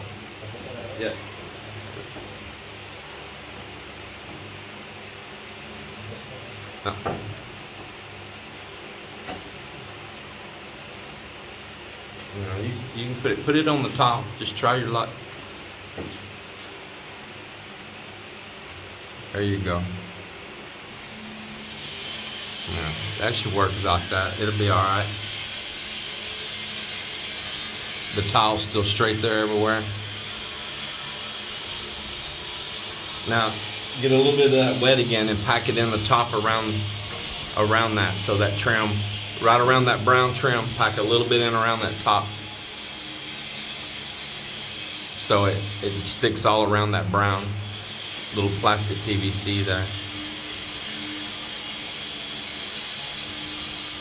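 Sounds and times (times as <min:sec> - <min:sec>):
room hum and hiss: 0:00.0 - 0:54.0.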